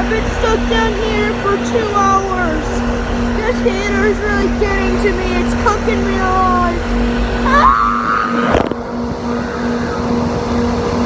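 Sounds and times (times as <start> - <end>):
bus engine rumble: 0.0 - 11.0
short rising whine: 0.0 - 11.0.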